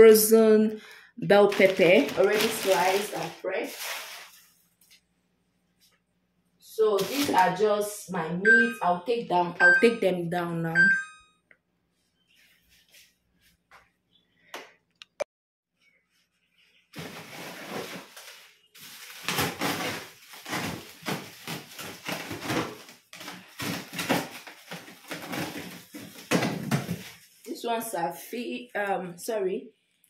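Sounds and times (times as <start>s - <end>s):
plastic bags crinkling: 1.3s - 4.9s, 17.0s - 27.4s
frozen packs knocking: 1.4s - 4.2s, 18.8s - 27.2s.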